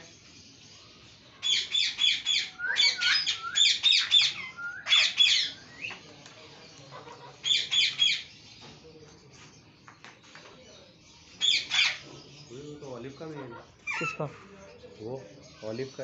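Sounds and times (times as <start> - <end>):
parakeet squawking: 1.4 - 5.6, 6.9 - 8.3, 11.4 - 12.2, 13.1 - 14.5.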